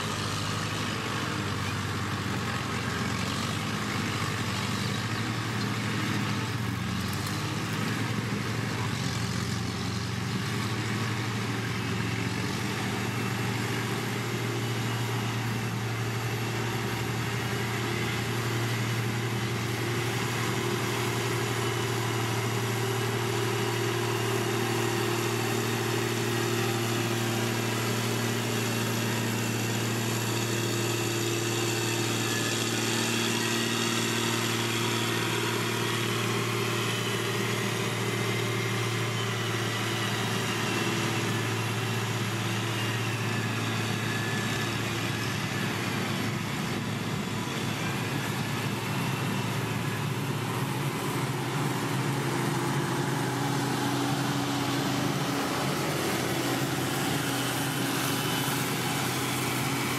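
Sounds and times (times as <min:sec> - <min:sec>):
diesel engine running steadily: 0:00.0 - 0:59.9.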